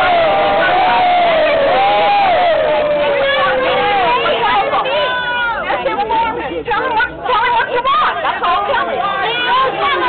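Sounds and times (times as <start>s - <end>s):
people arguing and shouting: 0.0s - 10.0s.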